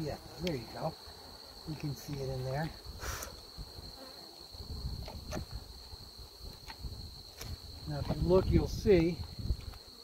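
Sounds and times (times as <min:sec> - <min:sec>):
bees buzzing: 0:00.0 - 0:06.6.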